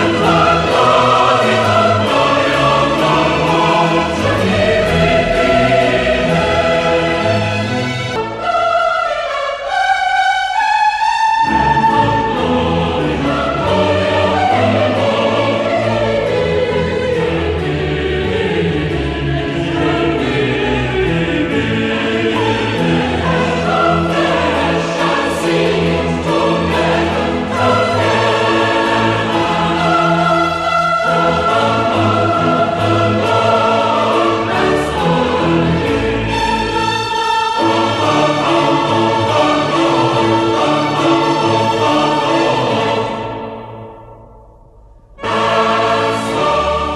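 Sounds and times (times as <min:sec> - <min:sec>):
choir singing: 0:00.0 - 0:46.9
orchestral accompaniment: 0:00.0 - 0:46.9.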